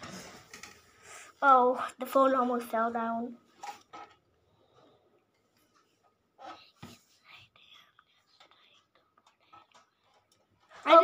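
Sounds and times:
faint whispering: 6.4s - 10.2s.

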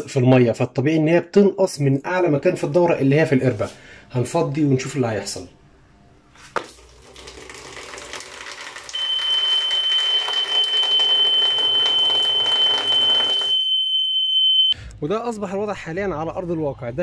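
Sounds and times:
electric buzzer high tone: 8.9s - 14.8s.

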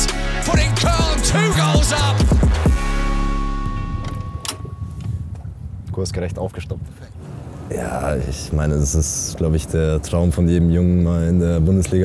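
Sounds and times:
motorboat engine rumbling: 2.6s - 6.2s.

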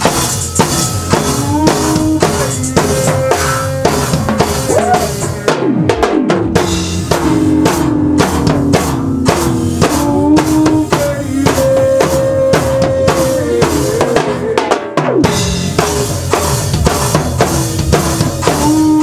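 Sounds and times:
sliding melody notes: 0.0s - 5.6s
drum kit beat: 0.0s - 19.0s
live band playing: 0.0s - 19.0s.

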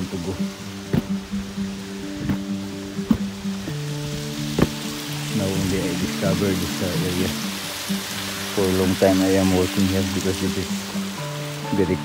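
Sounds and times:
held chords music: 0.0s - 12.0s.

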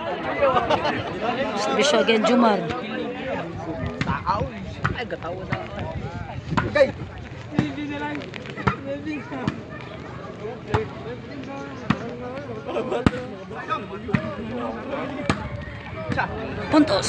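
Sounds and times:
crowd voices: 0.0s - 17.0s.

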